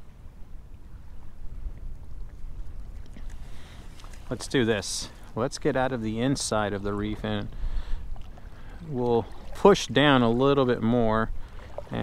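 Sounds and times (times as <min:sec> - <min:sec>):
water lapping at a kayak: 0:00.0 - 0:12.0.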